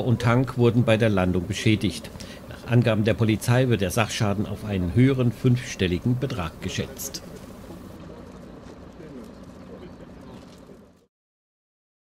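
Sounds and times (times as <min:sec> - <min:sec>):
outdoor background noise: 0:00.0 - 0:11.1.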